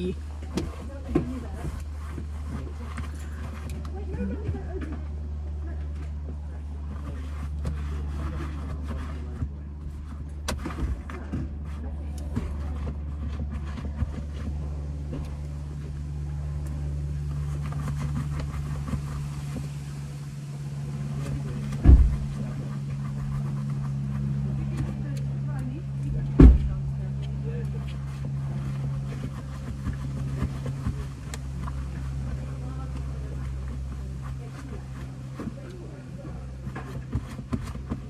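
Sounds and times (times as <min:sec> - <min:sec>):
car engine idling: 0:00.0 - 0:38.0
heavy thumps: 0:20.7 - 0:33.8.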